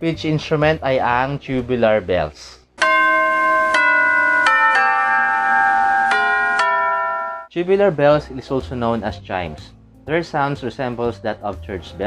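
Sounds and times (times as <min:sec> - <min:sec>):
tubular bells struck: 0:02.8 - 0:07.5.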